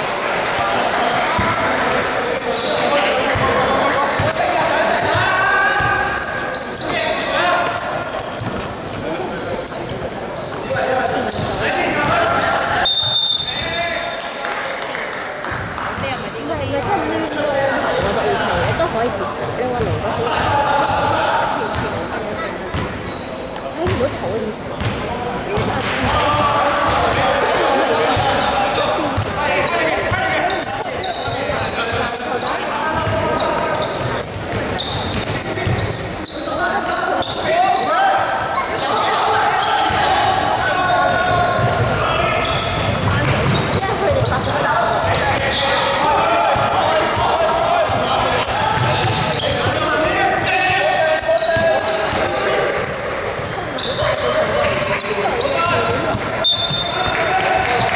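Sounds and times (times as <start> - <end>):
sneaker squeaks: 1.2 - 14.4, 15.5 - 57.9
basketball bouncing on wooden court: 3.3 - 4.4, 18.0 - 20.5, 22.7 - 23.0, 23.8 - 25.0, 25.6 - 27.2, 34.0 - 36.0, 41.3 - 45.4, 47.9 - 50.0.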